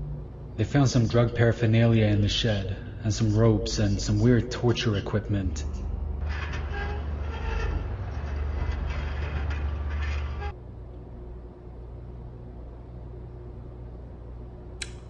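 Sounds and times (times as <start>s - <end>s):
low rumbling drone: 0.0s - 10.7s
faint steady hum: 0.0s - 15.0s
sharp click: 14.8s - 15.0s.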